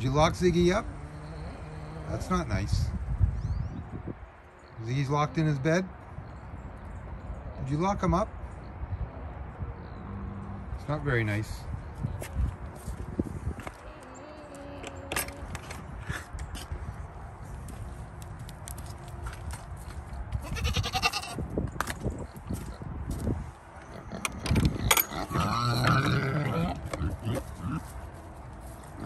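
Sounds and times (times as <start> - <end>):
goats bleating: 20.4 - 21.4.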